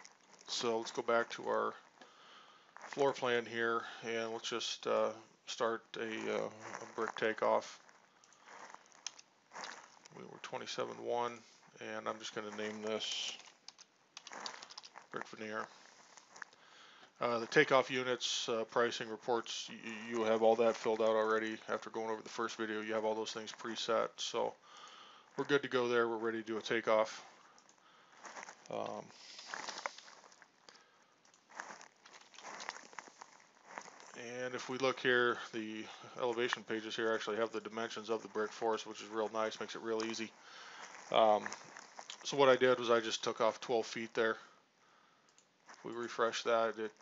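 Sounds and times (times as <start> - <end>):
soft rustly hiss: 0.0 - 47.0
soft breath: 1.7 - 2.9, 7.8 - 8.8, 15.6 - 17.2, 24.6 - 25.4, 27.2 - 34.1, 40.3 - 42.1, 44.4 - 45.9.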